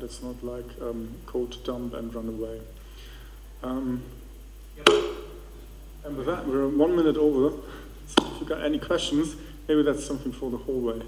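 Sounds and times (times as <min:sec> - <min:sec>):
sharp knock: 0:04.8 - 0:05.4, 0:08.1 - 0:08.5.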